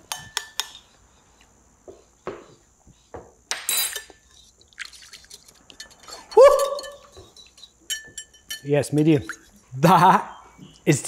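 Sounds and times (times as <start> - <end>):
wire whisk clinking ceramic bowl: 5.7 - 9.7.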